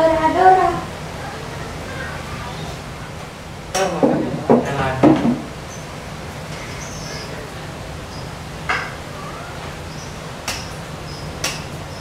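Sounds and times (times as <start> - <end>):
woman's voice: 0.0 - 0.9.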